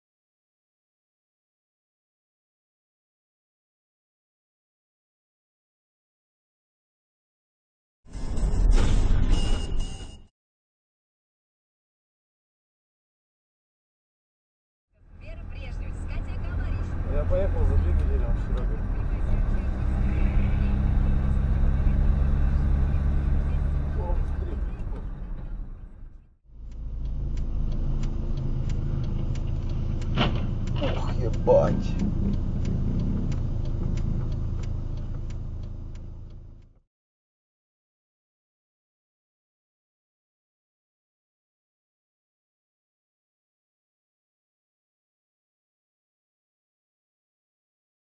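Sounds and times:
car road and engine rumble: 0:15.0 - 0:36.8
turn signal ticking: 0:15.2 - 0:36.8
person talking: 0:30.8 - 0:32.4.

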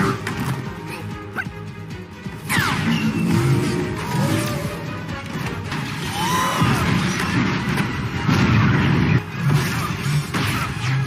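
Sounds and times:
explosions: 0:05.6 - 0:10.6
blaster fire: 0:05.6 - 0:11.0.

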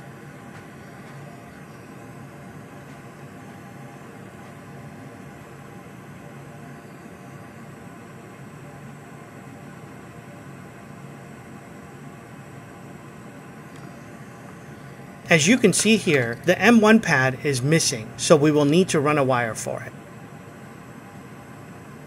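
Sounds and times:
low hum with hiss: 0:00.0 - 0:22.0.

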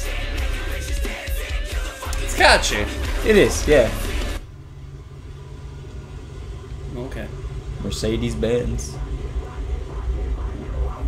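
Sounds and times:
metal music: 0:00.0 - 0:11.0
car engine idling: 0:02.2 - 0:11.0.

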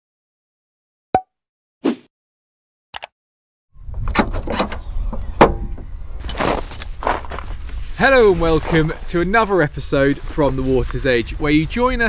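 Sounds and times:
wind rumble on microphone: 0:03.8 - 0:12.0.

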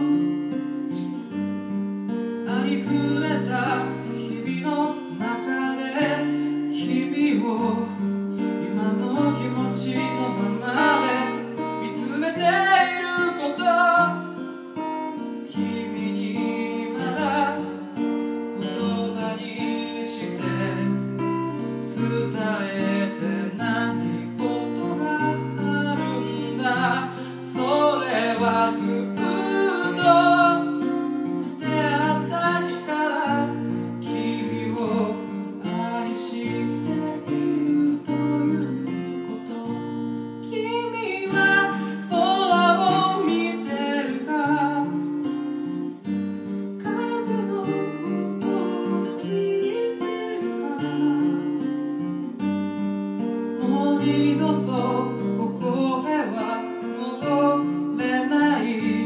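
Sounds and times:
acoustic guitar strumming: 0:00.0 - 0:59.0
person singing a slow ballad: 0:00.0 - 0:59.0.

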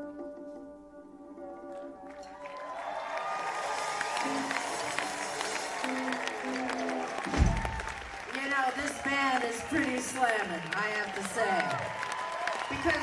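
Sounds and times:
audience applauding and cheering: 0:01.7 - 0:13.0
rock band final notes: 0:03.8 - 0:08.1
low thump: 0:07.3 - 0:07.9.

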